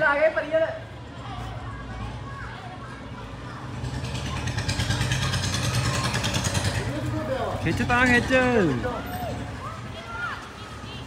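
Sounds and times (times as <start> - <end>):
small engine running: 3.7 - 9.2.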